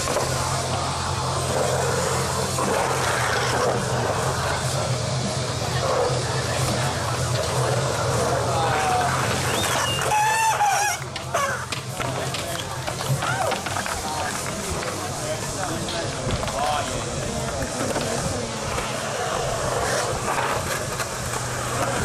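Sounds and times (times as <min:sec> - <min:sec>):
crowd voices: 0:00.0 - 0:22.0
skateboard wheels rolling on concrete: 0:00.0 - 0:22.0
loud shout: 0:08.6 - 0:11.6.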